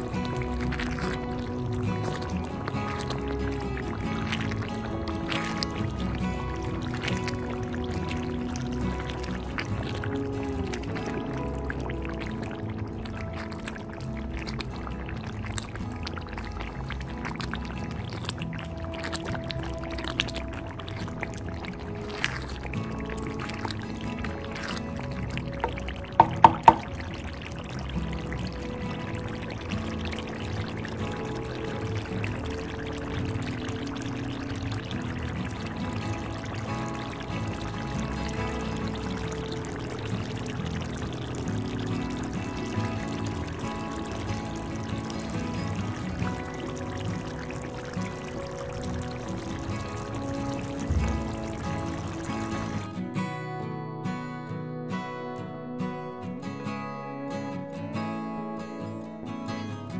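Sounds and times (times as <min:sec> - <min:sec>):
sauce sizzling in oil: 0:00.0 - 0:52.9
background music: 0:00.0 - 0:59.9.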